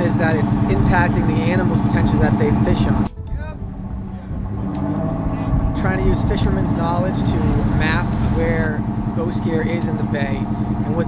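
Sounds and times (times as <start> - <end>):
boat engine rumbling: 0.0 - 11.0.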